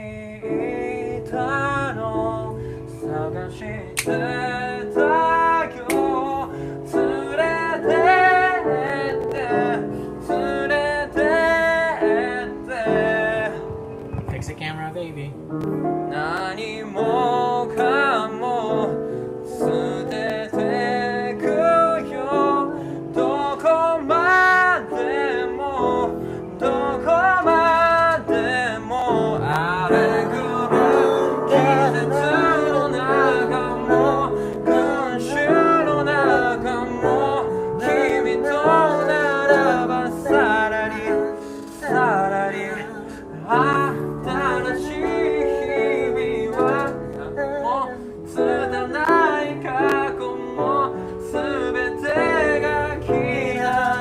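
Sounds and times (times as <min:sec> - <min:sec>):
man singing a ballad: 0:00.0 - 0:13.9, 0:16.0 - 0:54.0
upright piano: 0:00.0 - 0:54.0.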